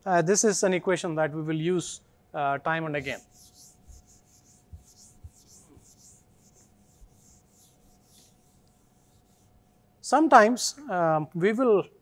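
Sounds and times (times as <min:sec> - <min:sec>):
eraser wiping whiteboard: 0:02.9 - 0:09.9.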